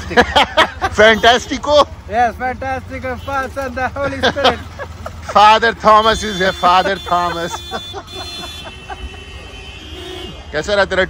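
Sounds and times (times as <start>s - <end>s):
street traffic hum: 0.0s - 11.0s
man laughing softly: 4.0s - 5.5s, 6.8s - 9.6s.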